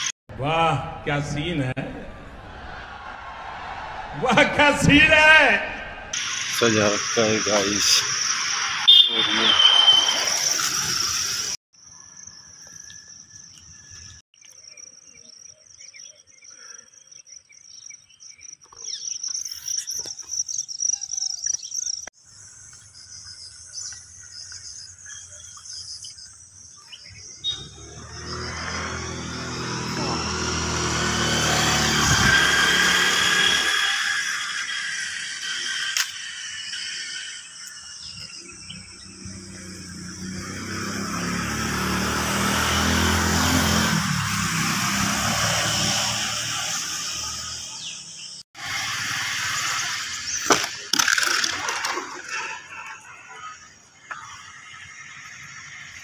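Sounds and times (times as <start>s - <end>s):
road vehicles passing: 1.0s - 11.6s, 27.3s - 37.5s, 38.6s - 50.4s
crickets chirping: 6.2s - 30.3s, 34.2s - 41.6s.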